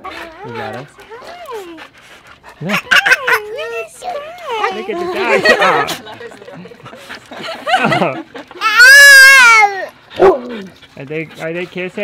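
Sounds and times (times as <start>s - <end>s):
toddler squealing: 8.6s - 9.9s.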